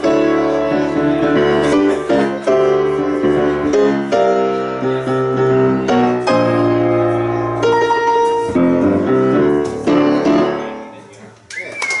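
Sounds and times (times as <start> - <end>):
grand piano chords: 0.0 - 11.3.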